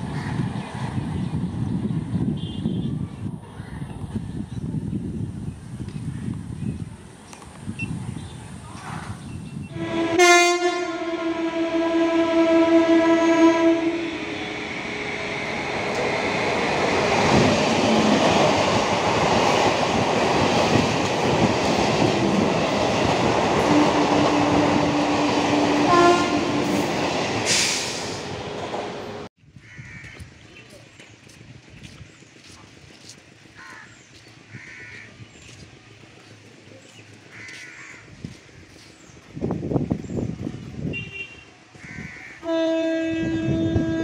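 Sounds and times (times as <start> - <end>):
train passing wheel and track noise: 0.0 - 29.3, 30.1 - 44.0
train horn: 9.7 - 14.8, 23.6 - 26.9, 42.4 - 44.0.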